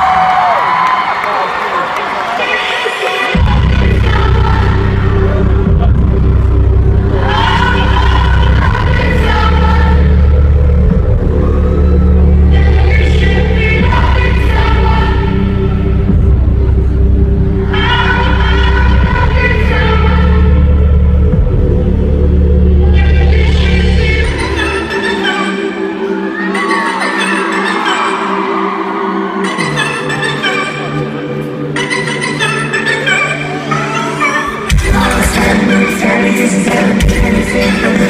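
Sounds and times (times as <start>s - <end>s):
crowd screaming and whooping: 0.0s - 4.9s, 7.1s - 16.8s, 22.7s - 31.7s
heavy low bass drone: 3.4s - 24.8s
person singing: 22.7s - 38.0s
loud live band music: 29.5s - 38.0s.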